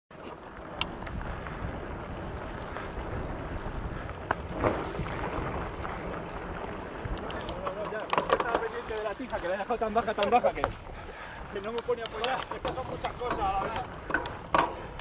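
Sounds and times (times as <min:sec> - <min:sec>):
bike clicks and rattles: 0:00.1 - 0:15.0
bike tyres rolling on dirt: 0:00.1 - 0:15.0
wind on microphone: 0:00.6 - 0:07.7.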